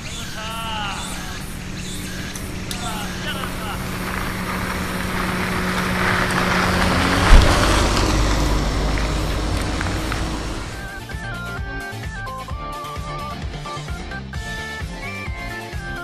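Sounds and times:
faint voices: 0.0s - 7.4s
motor vehicle passing: 0.0s - 11.0s
sharp low thump: 3.8s - 11.0s.

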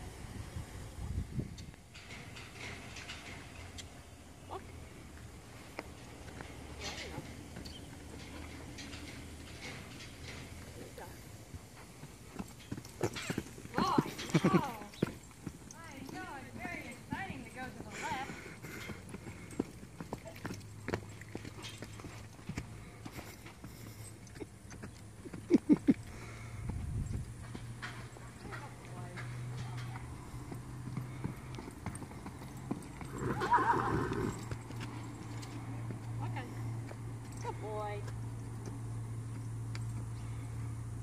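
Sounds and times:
horse hoofbeats on dirt: 1.4s - 41.0s
horse whinnying: 33.0s - 34.6s.

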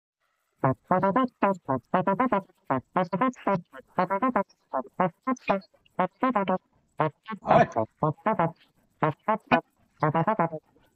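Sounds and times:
voice uttering pitched syllables: 0.7s - 10.6s.

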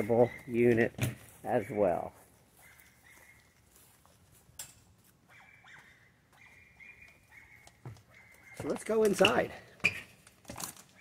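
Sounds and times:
faint high animal calls: 5.3s - 9.3s.

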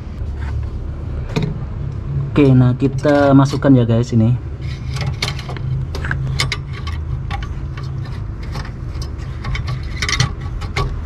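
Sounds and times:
steady low hum: 0.0s - 11.0s
metal and plastic knocking: 4.9s - 11.0s.

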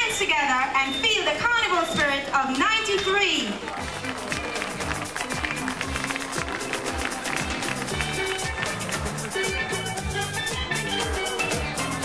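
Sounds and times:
steady drum beat: 3.8s - 12.0s.

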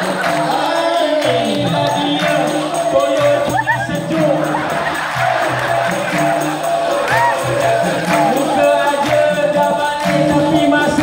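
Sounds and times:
hand clapping: 0.0s - 11.0s
percussion beat: 0.0s - 11.0s
voices singing: 0.0s - 11.0s.

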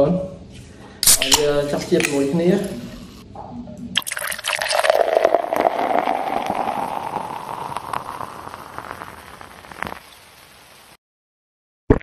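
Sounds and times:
beer pouring into a glass: 4.0s - 10.2s.

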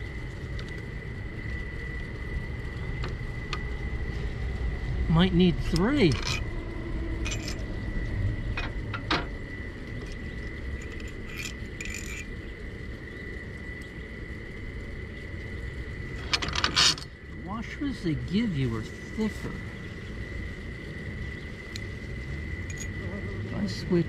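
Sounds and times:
faint steady high tone: 5.2s - 12.2s, 22.6s - 24.0s
metallic clicks of screws and washers: 10.8s - 12.3s.

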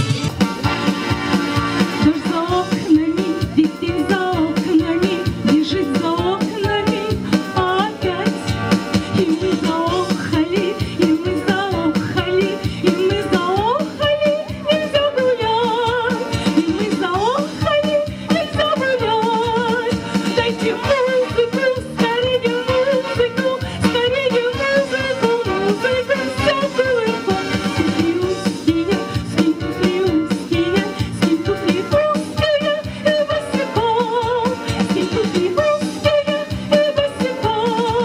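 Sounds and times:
backing music with drum beat: 0.0s - 38.0s
woman singing into microphone: 2.0s - 38.0s.

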